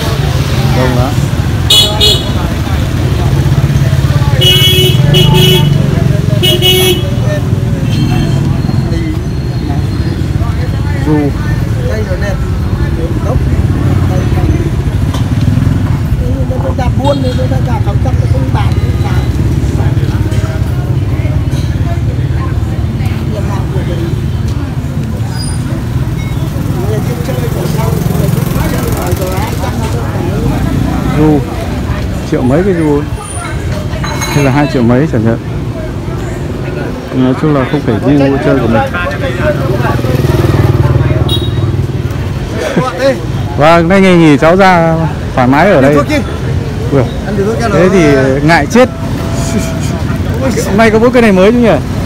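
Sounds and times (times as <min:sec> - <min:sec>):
crowd chatter: 0:00.0 - 0:52.0
motor scooter engines rumbling: 0:00.0 - 0:52.0.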